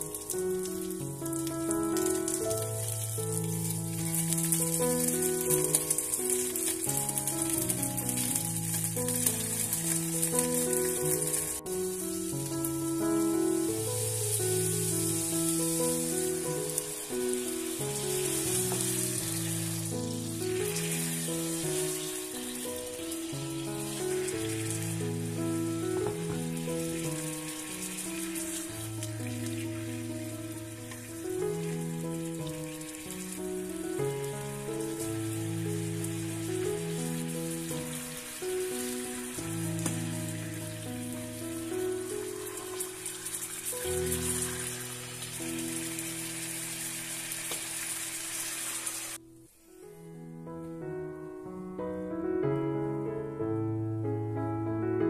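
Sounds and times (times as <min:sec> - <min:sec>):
sauce poured into hot pan: 0:00.0 - 0:12.6, 0:13.8 - 0:41.4, 0:42.0 - 0:49.2
background music: 0:00.0 - 0:47.2
fish sizzling in hot oil: 0:00.0 - 0:49.3.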